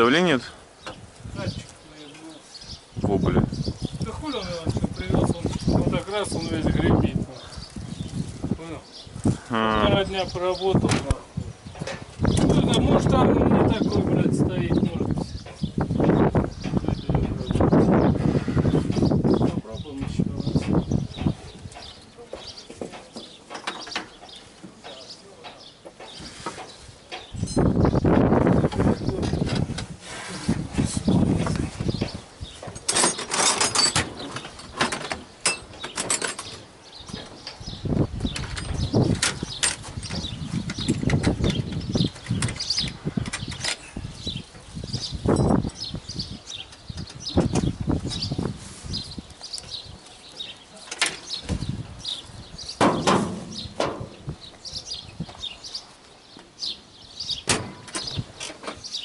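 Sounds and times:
wind buffeting microphone: 0.7 - 22.6, 25.6 - 55.8, 56.6 - 59.0
metal knocks and clanks: 52.8 - 54.2.

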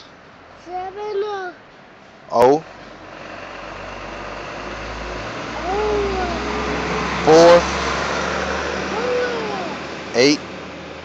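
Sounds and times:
vehicle engine and road noise: 0.0 - 11.0.

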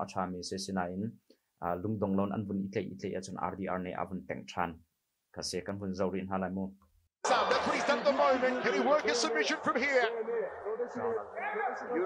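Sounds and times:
man commentating: 7.2 - 12.0.

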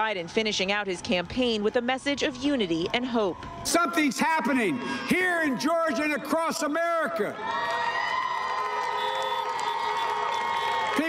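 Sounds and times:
crowd cheering: 1.3 - 11.0
car horns honking: 8.8 - 11.0.

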